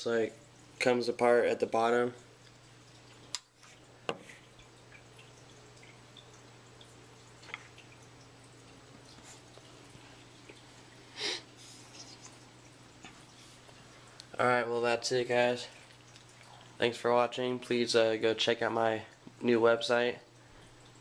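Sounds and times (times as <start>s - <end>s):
fish tank water trickling: 0.0s - 21.0s.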